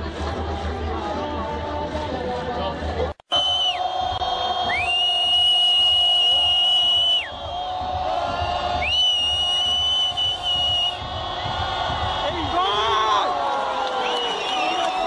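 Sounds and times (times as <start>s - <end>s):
stadium crowd noise: 0.0s - 15.0s
whistle long high notes: 3.3s - 7.6s, 8.8s - 11.0s.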